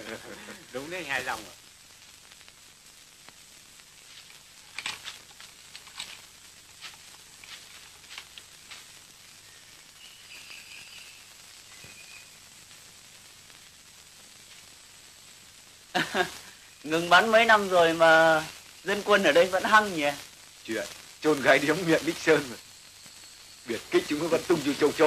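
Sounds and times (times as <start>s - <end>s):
film soundtrack hiss and crackle: 0.0s - 25.0s.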